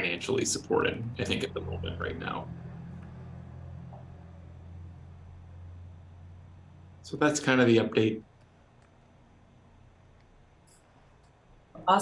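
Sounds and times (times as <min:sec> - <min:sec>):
low hum: 0:00.0 - 0:11.8.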